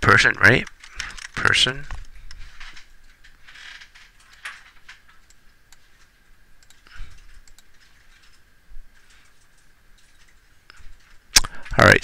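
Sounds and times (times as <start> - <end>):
mouse and keyboard clicks: 6.6 - 8.4.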